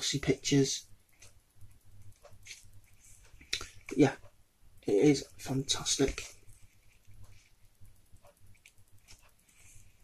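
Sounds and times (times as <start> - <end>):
low steady hum: 0.0 - 10.0
pages rustling and turning: 2.2 - 2.7.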